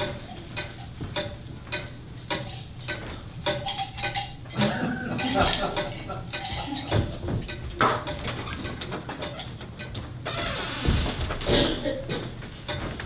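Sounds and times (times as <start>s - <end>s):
dishes and cutlery clinking: 0.0s - 10.1s
knocks: 10.4s - 13.0s.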